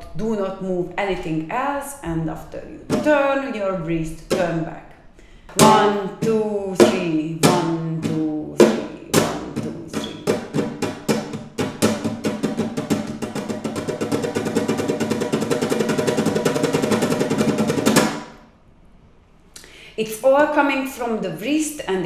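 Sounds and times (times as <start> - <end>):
flamenco guitar strumming: 2.8 - 3.6, 5.6 - 18.4.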